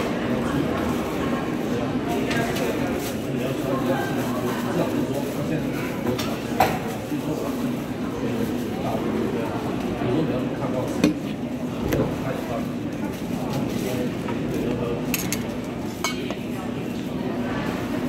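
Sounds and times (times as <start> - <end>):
murmur of voices: 0.0 - 18.0
metal bowls and chopsticks clinking: 15.1 - 16.4.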